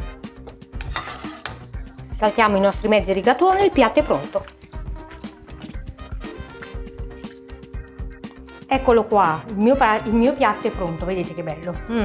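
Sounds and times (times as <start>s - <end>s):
background music with steady beat: 0.0s - 12.0s
sauce sizzling: 0.1s - 11.1s
stirring in a pan: 0.7s - 8.7s.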